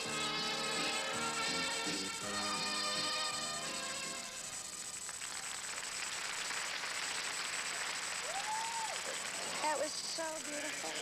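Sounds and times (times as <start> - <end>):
waltz music: 0.0 - 4.4
audience applauding: 5.0 - 11.0.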